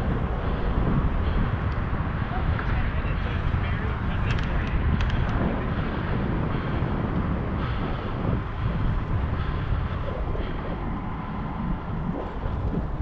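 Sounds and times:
tyre and road noise: 0.0s - 13.0s
wind rushing over microphone: 0.0s - 13.0s.

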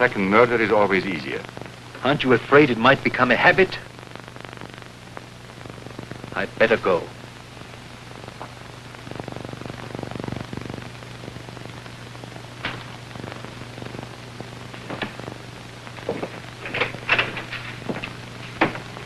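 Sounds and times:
film soundtrack hiss and hum: 0.0s - 19.0s.

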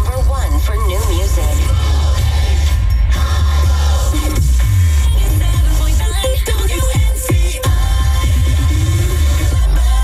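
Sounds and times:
radio announcer speaking: 0.0s - 1.7s
electronic music with deep bass: 0.0s - 10.0s.

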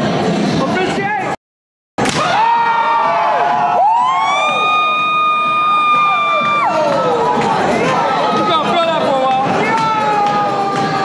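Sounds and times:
people shouting: 2.2s - 11.0s
high-pitched scream: 2.3s - 6.9s.

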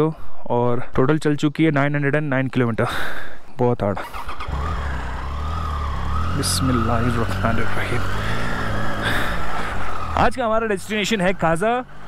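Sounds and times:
motorcycle engine idling: 4.1s - 12.0s.

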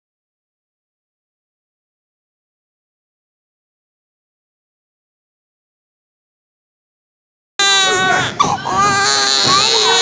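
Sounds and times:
high-pitched voice crying out: 7.6s - 10.0s.

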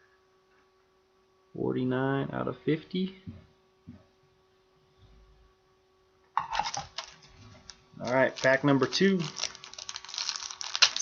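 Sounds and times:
faint electrical hum: 0.0s - 11.0s
foil pack crinkling and tearing: 6.6s - 11.0s.

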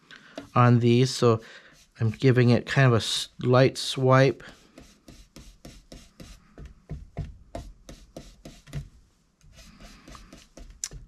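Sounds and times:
ink blending tool rubbing cardstock: 1.6s - 2.5s, 4.4s - 6.6s, 7.5s - 10.8s.

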